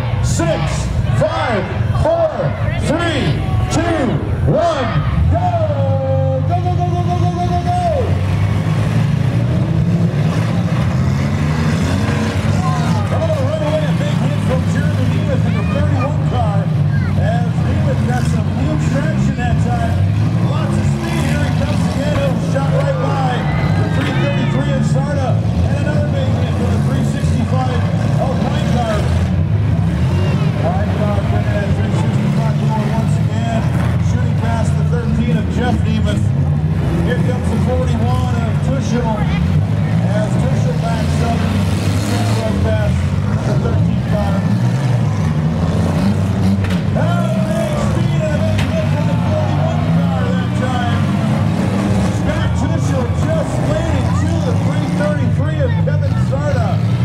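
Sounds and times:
crowd shouting: 0.0s - 8.7s, 11.0s - 17.4s, 20.5s - 25.9s, 47.0s - 51.6s
car engines revving hard: 0.0s - 57.0s
cars ramming each other: 0.0s - 57.0s.

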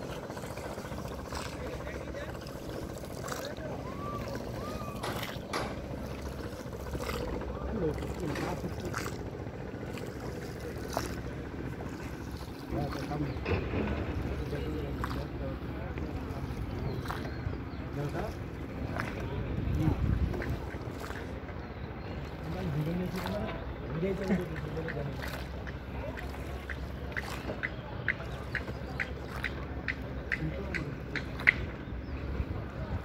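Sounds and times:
distant voices calling out: 0.0s - 33.0s
steady low rumble: 0.0s - 33.0s.

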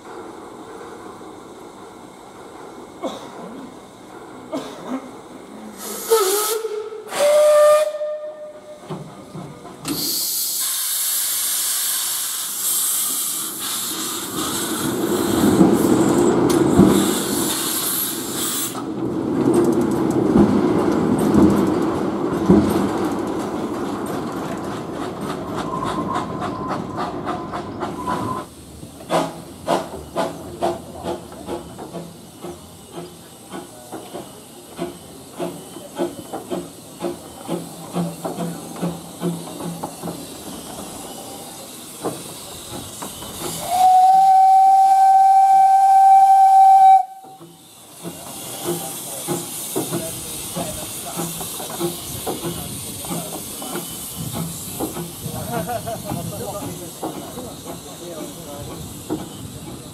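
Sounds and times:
steam hiss: 0.0s - 19.1s, 24.8s - 59.9s
steam locomotive chuffing: 0.0s - 59.9s
steam whistle blast: 5.9s - 8.8s, 43.6s - 47.5s.

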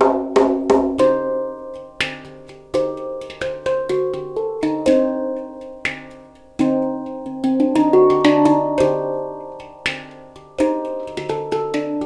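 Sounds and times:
handpan ringing notes: 0.0s - 12.0s.

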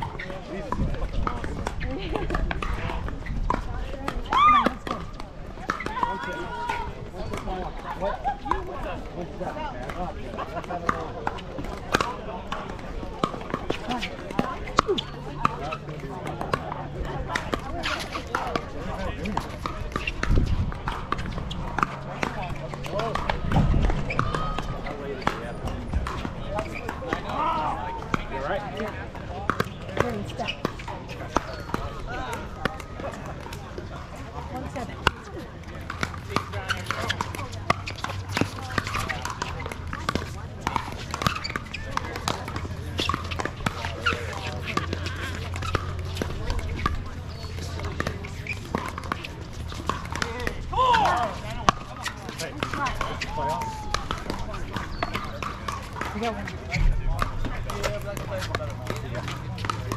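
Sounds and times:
people talking: 0.0s - 59.9s
paddles hitting plastic ball: 35.8s - 59.9s.

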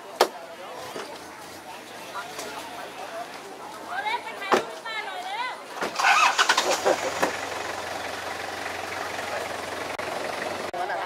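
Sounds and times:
people talking: 0.0s - 5.9s, 8.9s - 11.0s
vehicle engine starting and idling: 5.8s - 11.0s.

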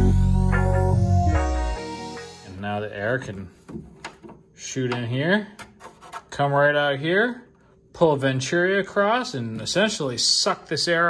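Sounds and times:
man talking: 2.4s - 3.6s, 4.6s - 5.6s, 6.3s - 11.0s.

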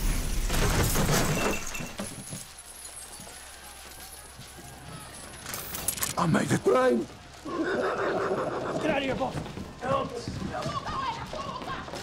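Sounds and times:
glass and debris shattering: 0.0s - 6.2s.

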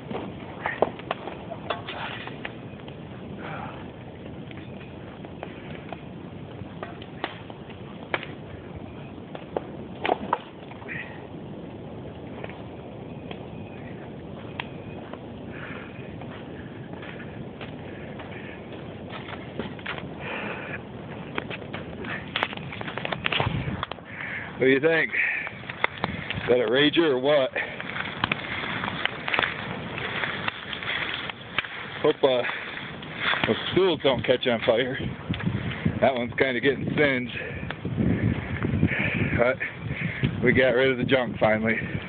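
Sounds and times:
bonfire flames rushing: 0.0s - 42.0s
wood crackling and popping: 0.0s - 42.0s.

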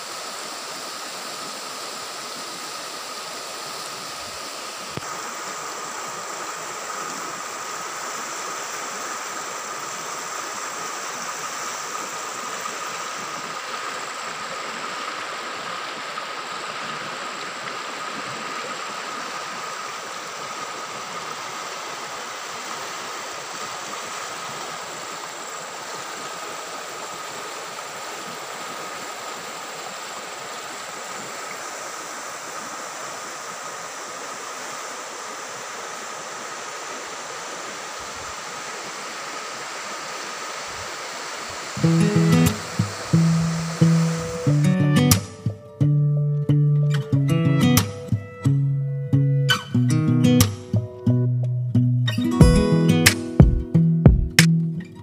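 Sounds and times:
river rushing: 0.0s - 50.8s
acoustic guitar music: 41.8s - 55.0s.

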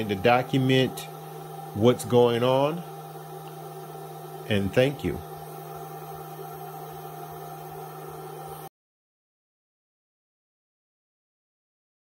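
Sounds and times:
low electrical hum: 0.0s - 8.7s.

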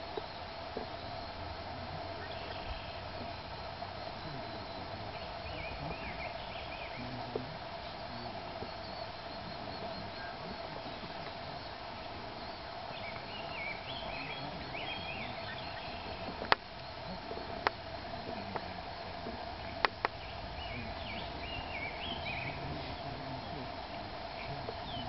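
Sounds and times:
birds chirping: 0.0s - 25.0s
faint background hum: 0.0s - 25.0s.

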